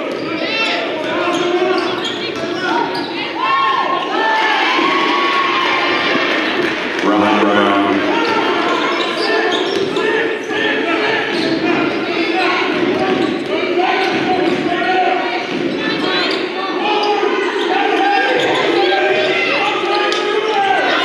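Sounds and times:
chatter of many voices: 0:00.0 - 0:21.0.

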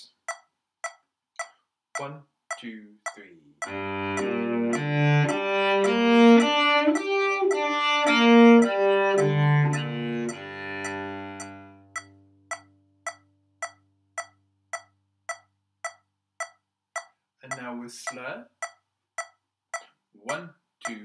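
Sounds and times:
steady short ticks: 0:00.0 - 0:21.0
cello arpeggio: 0:03.6 - 0:12.6.

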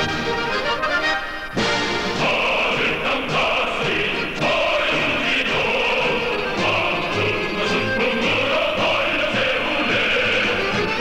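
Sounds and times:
instrumental accompaniment: 0:00.0 - 0:11.0
choir singing: 0:01.5 - 0:11.0.

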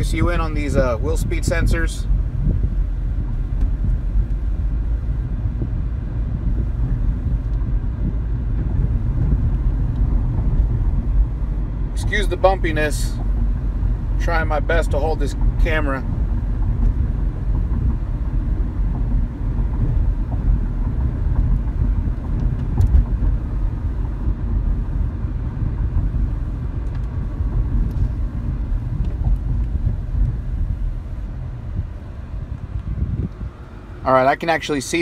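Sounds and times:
car road noise inside cabin: 0:00.0 - 0:35.0.

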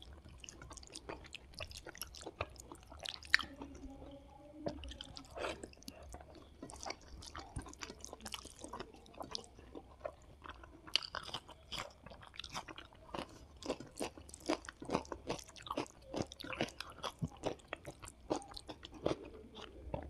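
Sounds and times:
chewing food: 0:00.0 - 0:20.0.

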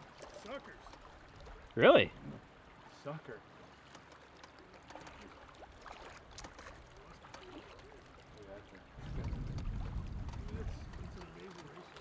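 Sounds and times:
river water splashing and trickling: 0:00.0 - 0:12.0.

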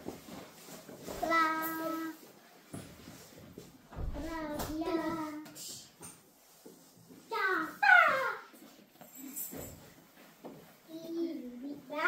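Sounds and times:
high-pitched descending cry: 0:07.8 - 0:08.5.

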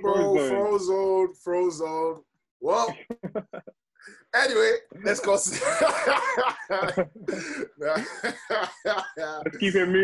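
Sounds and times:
man's voice: 0:00.0 - 0:03.3.

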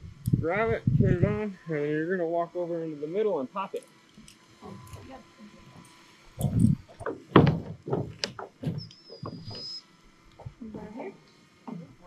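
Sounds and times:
heavy thumps: 0:04.6 - 0:09.8
footsteps on wooden deck: 0:04.6 - 0:11.0.

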